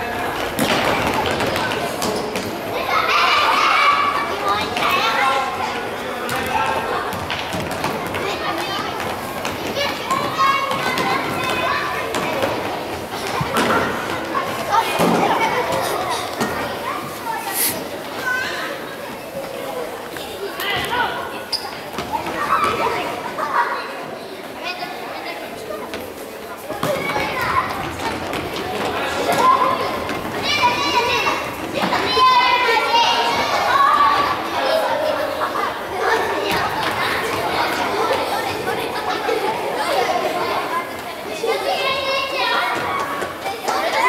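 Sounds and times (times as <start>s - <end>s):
children shouting: 2.6s - 7.3s, 7.9s - 25.2s, 28.6s - 44.0s.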